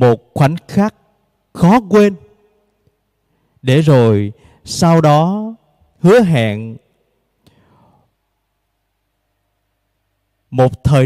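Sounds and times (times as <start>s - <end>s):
soft breath: 4.4s - 4.7s, 7.4s - 8.2s.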